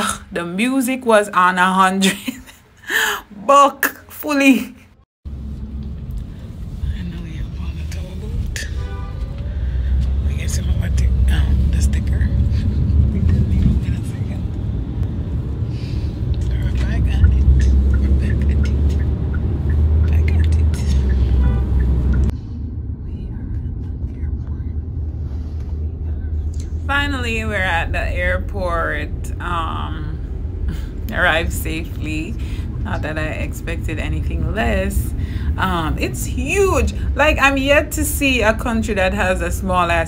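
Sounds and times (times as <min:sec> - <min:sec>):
car road and engine rumble: 0:05.3 - 0:40.0.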